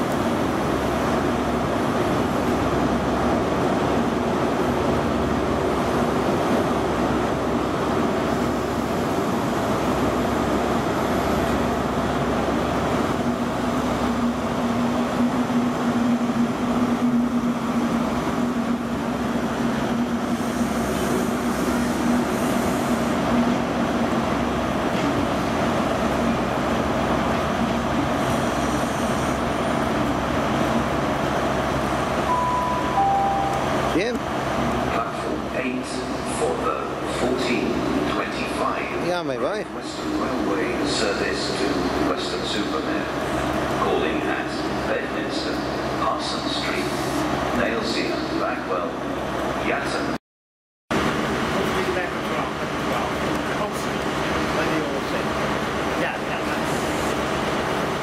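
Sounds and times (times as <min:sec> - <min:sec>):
diesel train engine rumble: 0:00.0 - 0:50.2, 0:50.9 - 0:58.0
two-note tone: 0:32.3 - 0:34.0.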